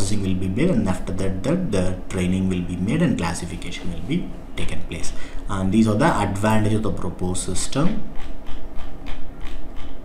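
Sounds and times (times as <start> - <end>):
mouse scroll wheel clicking: 8.2 - 10.0.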